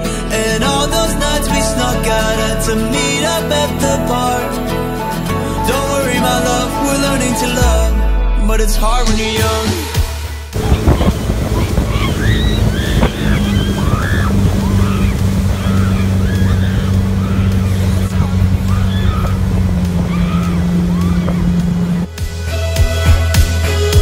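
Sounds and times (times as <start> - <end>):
water rushing and splashing: 9.7 - 24.0
motorboat engine running: 10.1 - 24.0
voices shouting and whooping: 10.6 - 22.1.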